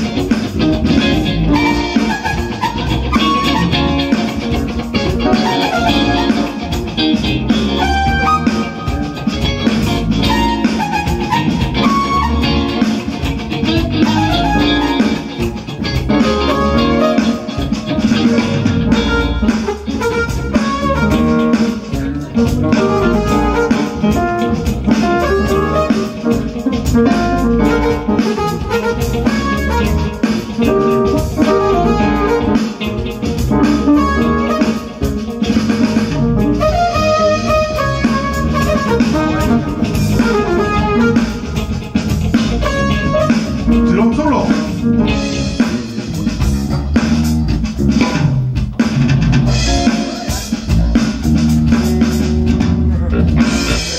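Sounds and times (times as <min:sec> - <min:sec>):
electric bass: 0:00.0 - 0:53.9
electric guitar: 0:00.0 - 0:53.9
electronic drum kit: 0:00.0 - 0:53.9
keyboards: 0:00.0 - 0:53.9.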